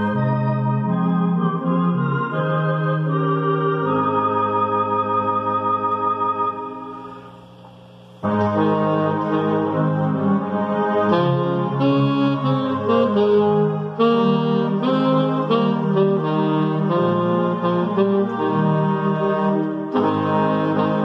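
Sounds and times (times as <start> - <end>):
keyboard accompaniment: 0.0 - 21.0
alto saxophone playing hymn: 8.2 - 21.0.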